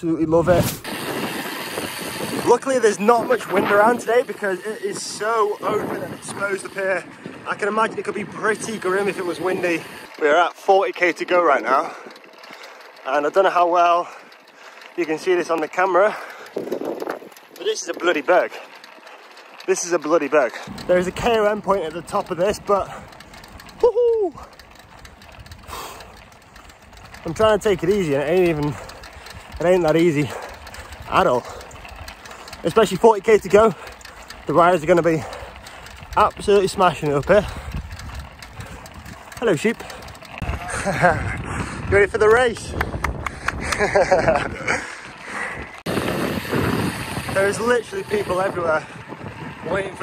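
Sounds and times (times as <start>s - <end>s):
wind rush and road noise: 0.0s - 10.2s, 16.1s - 18.6s, 20.6s - 50.0s
low steady riding noise: 0.0s - 50.0s
cyclist groaning with effort: 11.7s - 13.1s, 16.1s - 17.4s, 20.5s - 36.2s, 37.0s - 42.1s, 43.2s - 47.4s
man laughing: 23.8s - 24.4s, 40.4s - 41.6s, 43.3s - 45.7s.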